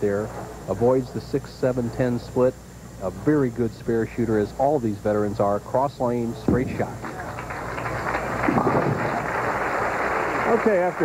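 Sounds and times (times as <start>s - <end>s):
bowling ball rolling on wooden lane: 6.5s - 9.7s.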